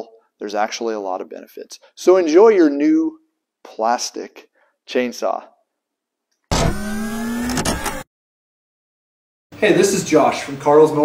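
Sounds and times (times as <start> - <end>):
engine rev sound effect: 6.5 - 8.0.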